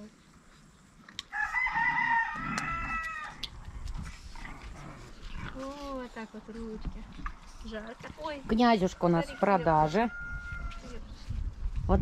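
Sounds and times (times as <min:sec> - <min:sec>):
rooster crowing: 0:01.3 - 0:03.4, 0:09.0 - 0:11.0.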